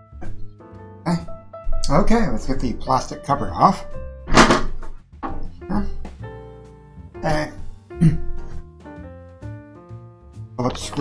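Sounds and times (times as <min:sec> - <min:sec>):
background music: 0:00.0 - 0:11.0
handling knocks: 0:04.3 - 0:06.2.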